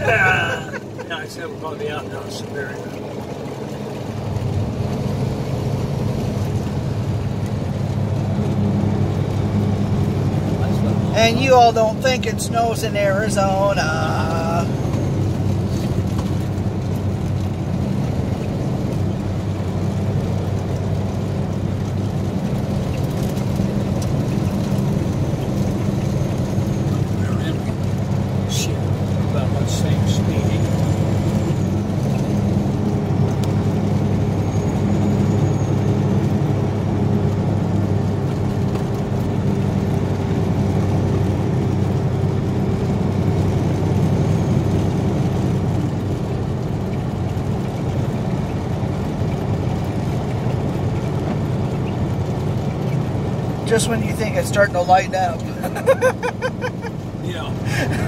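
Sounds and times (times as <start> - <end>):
truck diesel engine droning: 0.0 - 58.0.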